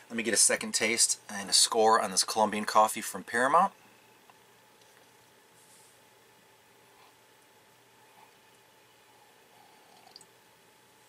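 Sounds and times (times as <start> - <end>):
sipping coffee: 9.2 - 10.3.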